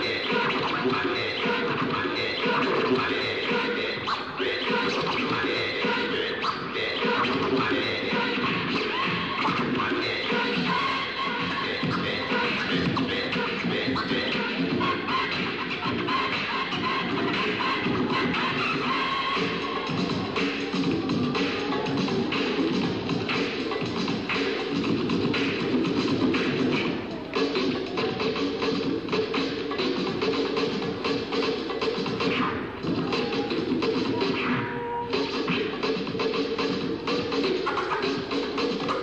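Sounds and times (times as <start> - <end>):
music: 0.0 - 39.0
vinyl record scratching: 0.0 - 39.0.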